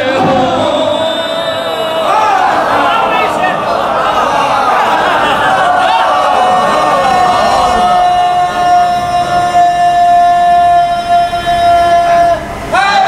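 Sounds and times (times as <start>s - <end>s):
crowd voices: 0.0s - 13.0s.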